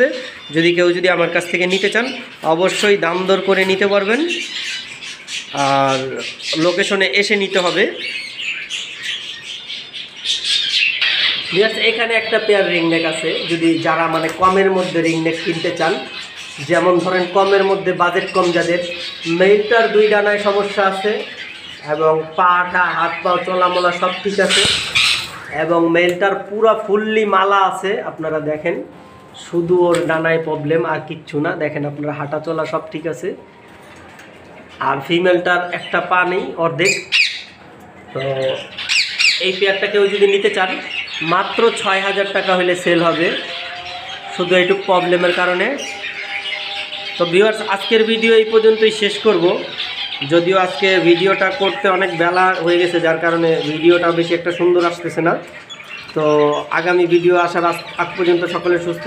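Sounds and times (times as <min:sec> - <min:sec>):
caged birds chirping and squawking: 0:00.0 - 0:59.0.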